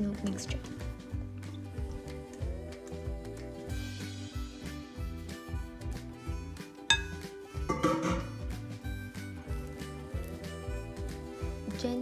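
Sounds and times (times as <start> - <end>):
music with steady beat: 0.6 - 12.0
mixing bowl clink: 6.9 - 7.3.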